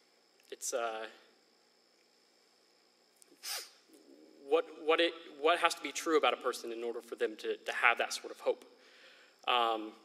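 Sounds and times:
short sharp breath: 3.4 - 3.8, 8.8 - 9.4.

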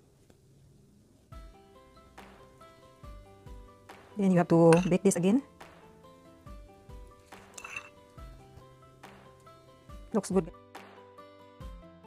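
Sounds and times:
quiet background music: 0.1 - 12.0
metal spoon clinking on glass dish: 4.7 - 5.0, 7.5 - 8.0.

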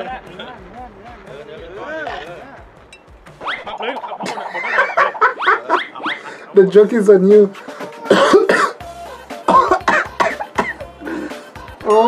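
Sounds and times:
background music: 0.0 - 12.0
man coughing: 8.1 - 8.8, 9.5 - 10.9.

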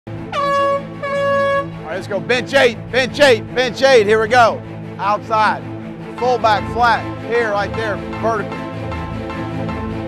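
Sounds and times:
air horn blasts: 0.2 - 2.0.

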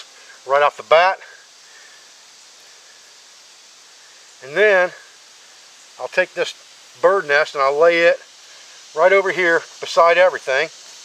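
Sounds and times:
faint outdoor hiss: 0.0 - 11.0.

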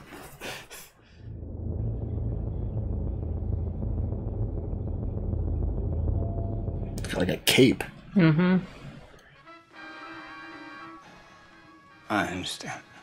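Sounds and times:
low rumbling drone: 1.1 - 8.2.

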